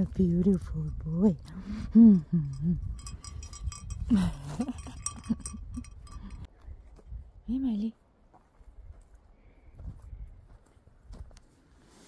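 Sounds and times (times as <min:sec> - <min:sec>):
small metal bell clinking: 0:02.2 - 0:06.5.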